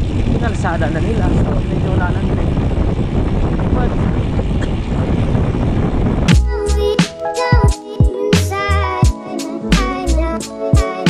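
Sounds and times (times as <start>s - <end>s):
bike rolling on concrete: 0.0s - 6.4s
wind on camera microphone: 0.0s - 6.9s
lo-fi music with a beat: 6.3s - 11.0s.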